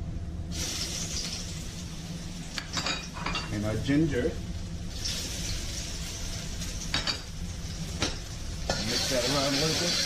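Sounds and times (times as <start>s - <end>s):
garlic sizzling in hot oil: 0.5s - 2.7s, 4.8s - 10.0s.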